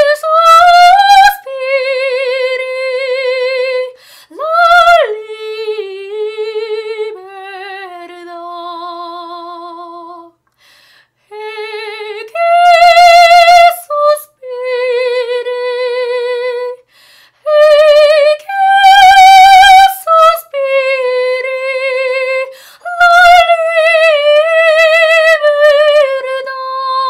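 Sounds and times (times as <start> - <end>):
woman singing opera unaccompanied: 0.0 - 10.4, 11.3 - 27.0.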